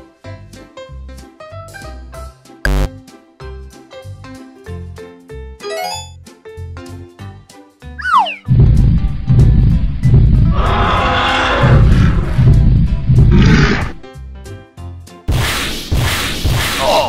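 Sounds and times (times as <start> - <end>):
light children's music: 0.0 - 9.3, 14.0 - 15.3
short falling whistle: 8.0 - 8.5
deep dinosaur roar: 10.4 - 12.6, 13.2 - 14.0.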